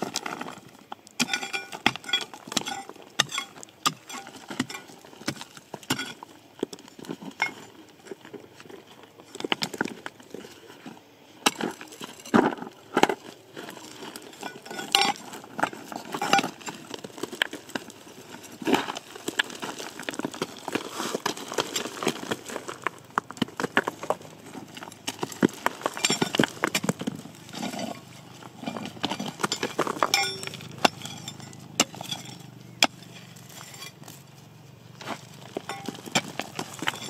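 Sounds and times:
rocks clinking together: 0.0 - 34.2, 35.0 - 37.0
metal tool striking stones: 1.2 - 6.8, 11.4 - 12.4, 14.2 - 16.7, 25.0 - 34.0, 35.5 - 37.0.

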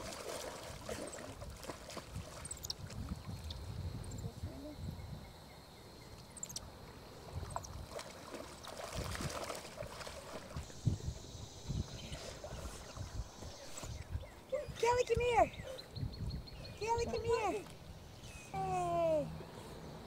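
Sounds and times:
swimmers splashing in water: 0.0 - 2.7, 7.7 - 10.7
wind rumble on microphone: 0.0 - 6.0, 7.0 - 19.5.

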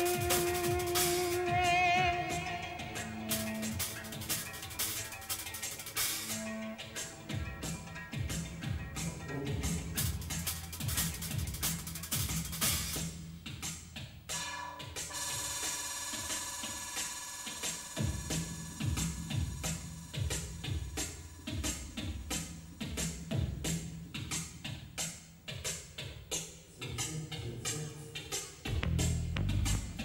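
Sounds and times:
held high tone: 0.0 - 4.7
fast busy drum beat: 0.0 - 14.2, 15.0 - 27.8, 28.4 - 30.0
pulsing low bass: 28.7 - 30.0.

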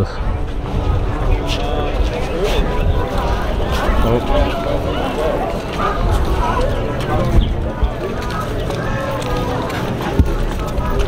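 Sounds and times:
indistinct voices: 0.0 - 11.0
music: 0.0 - 11.0
steady low rumble: 0.0 - 11.0.

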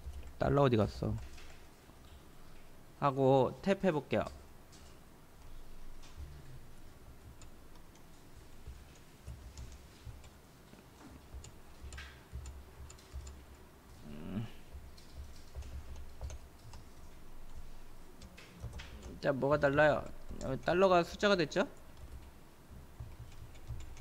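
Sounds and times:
keyboard keys clicking: 5.4 - 13.6, 14.6 - 24.0.

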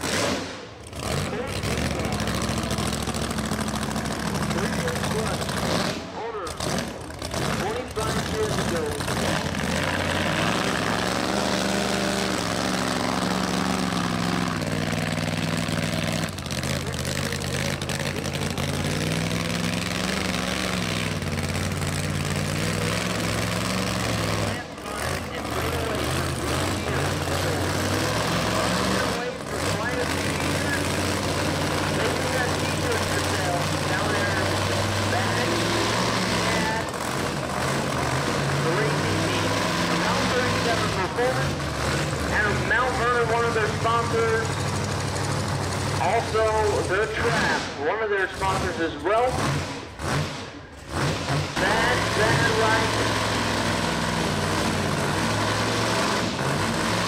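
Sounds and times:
car engine running at low speed: 0.0 - 57.0.

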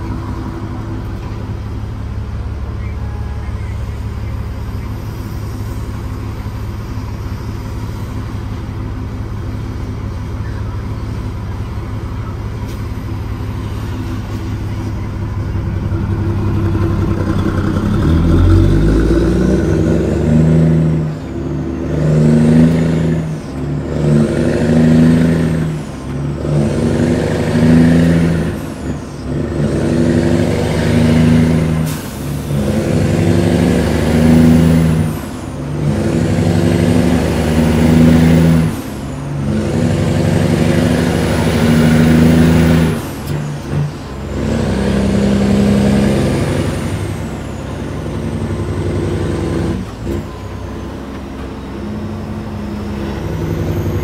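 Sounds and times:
diesel truck engine shifting gears: 0.0 - 54.0.

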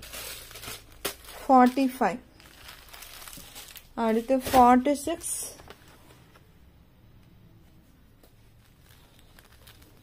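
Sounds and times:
fabric rustling and crinkling: 0.0 - 6.2, 8.2 - 10.0.

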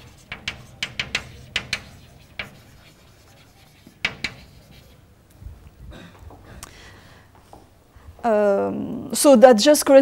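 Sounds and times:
chalk writing on blackboard: 0.0 - 5.1.

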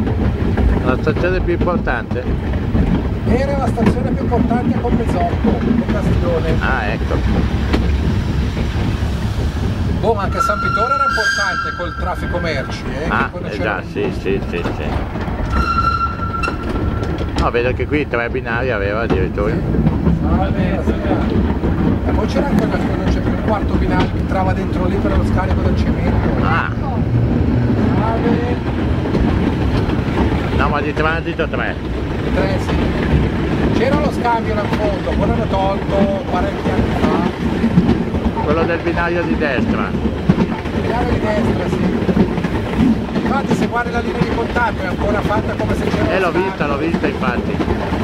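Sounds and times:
train wheels rumbling on rail: 0.0 - 48.0
people talking: 0.8 - 2.3, 3.3 - 7.4, 10.0 - 15.0, 17.4 - 21.4, 22.1 - 27.1, 27.9 - 28.6, 30.6 - 32.8, 33.7 - 37.4, 38.2 - 42.1, 43.2 - 47.7.

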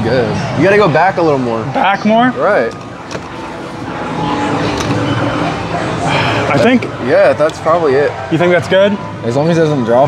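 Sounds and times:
arcade machine noise: 0.0 - 10.0
distant chatter: 0.0 - 10.0.

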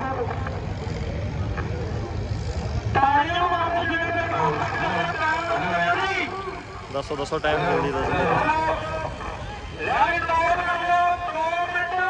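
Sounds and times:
tractor engine rumble: 0.0 - 11.7.

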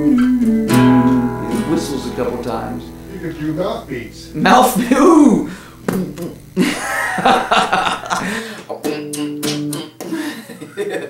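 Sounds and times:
guitar strumming: 0.0 - 10.0.

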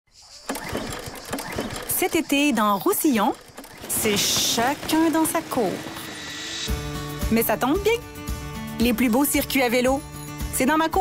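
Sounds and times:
lawn mower engine running: 3.2 - 6.8.

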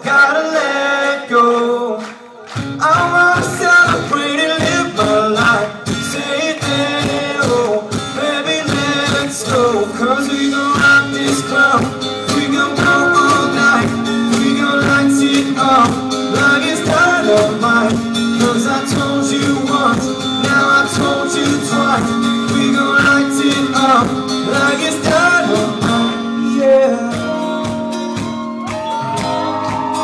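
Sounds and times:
acoustic guitar: 0.0 - 30.0
electric guitar: 2.0 - 30.0
person singing: 2.8 - 30.0.

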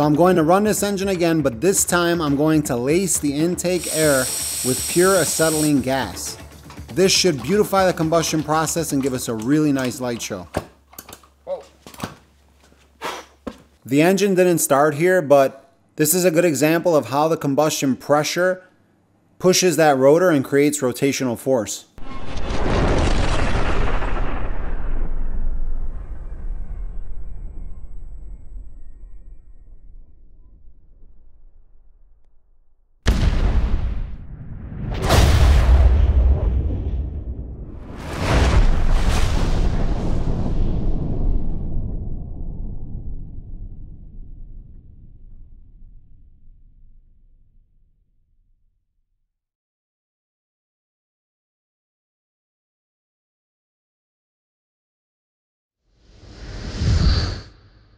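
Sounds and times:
engine ignition blast: 3.7 - 5.9
short rush of sound: 56.0 - 57.9.

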